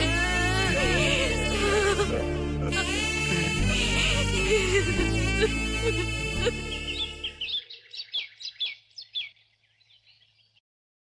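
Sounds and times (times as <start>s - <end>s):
background score music: 0.0s - 7.6s
high bird chirps: 6.7s - 10.6s.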